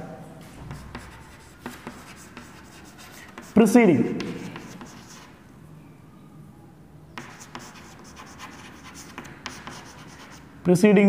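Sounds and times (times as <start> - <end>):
chalk scratching on chalkboard: 0.4 - 5.4, 7.2 - 10.8.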